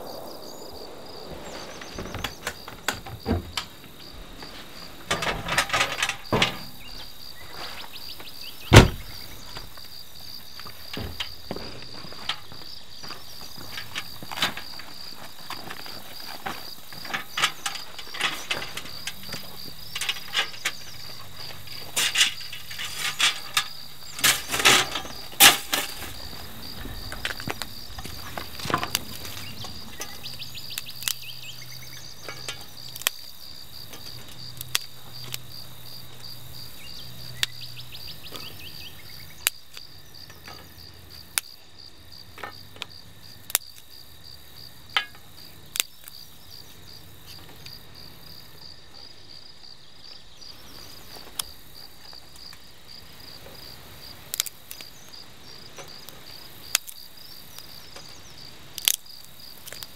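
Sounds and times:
insects chirring: 0:00.0 - 0:59.9
metallic knocks and rattles: 0:01.8 - 0:07.3, 0:15.6 - 0:30.6, 0:32.0 - 0:32.9.

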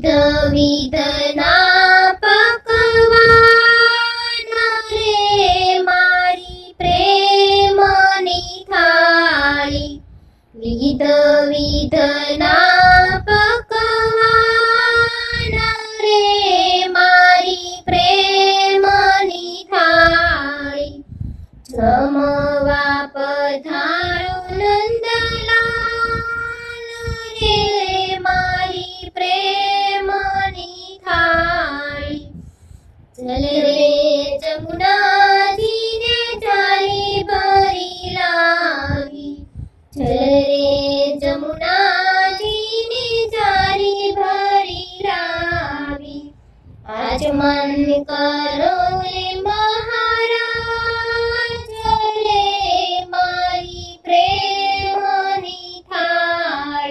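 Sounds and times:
high voice singing devotional song: 0:00.0 - 0:56.9.

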